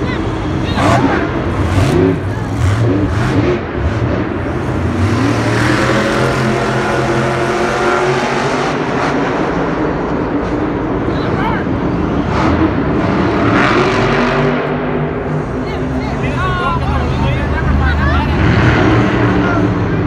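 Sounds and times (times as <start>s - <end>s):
monster truck engine revving: 0.0s - 16.4s, 17.1s - 20.0s.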